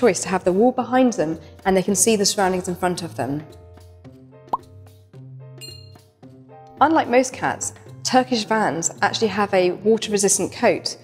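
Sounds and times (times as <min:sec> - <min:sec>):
soft background music: 0:00.0 - 0:11.0
cartoon plop: 0:04.5 - 0:04.7
high chime: 0:05.6 - 0:06.0.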